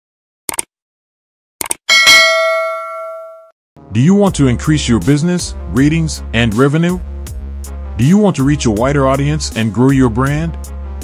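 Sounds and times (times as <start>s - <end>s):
bright notification ding: 1.9s - 3.5s.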